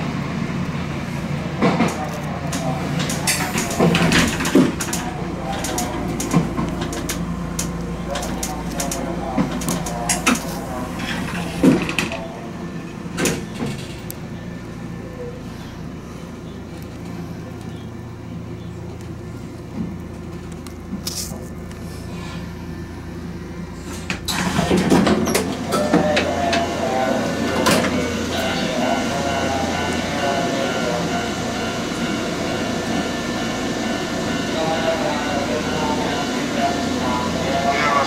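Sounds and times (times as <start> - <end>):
low steady train hum: 0.0 - 38.0
voices or announcement: 1.4 - 16.7, 24.3 - 38.0.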